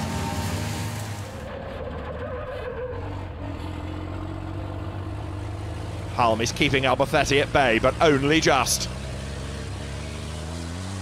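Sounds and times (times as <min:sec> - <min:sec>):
diesel engine droning: 0:00.0 - 0:11.0
wind and road noise: 0:00.0 - 0:11.0.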